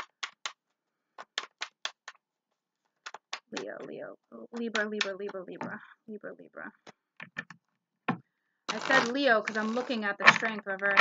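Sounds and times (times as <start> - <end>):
cards slapping during shuffling: 0.0 - 2.2, 2.9 - 3.8.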